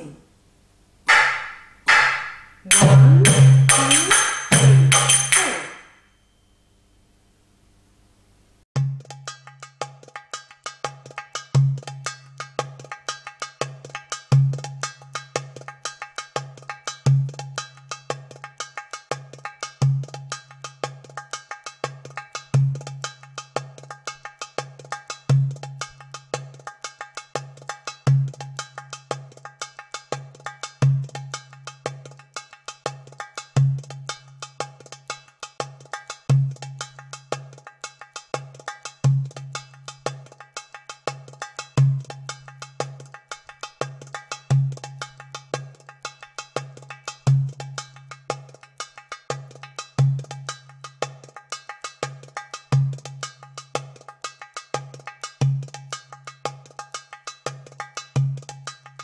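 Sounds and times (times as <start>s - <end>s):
finger cymbals clicking: 1.1s - 5.9s.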